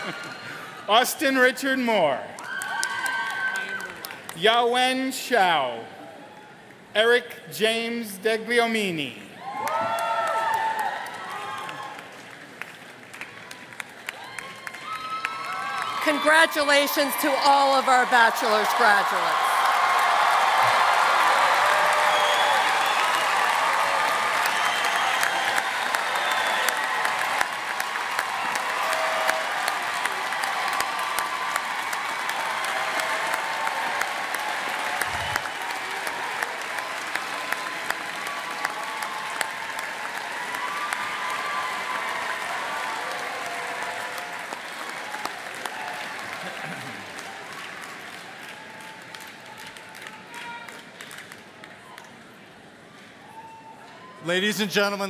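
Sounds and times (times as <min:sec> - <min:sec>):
large audience applauding: 0:00.0 - 0:04.9, 0:09.0 - 0:52.5.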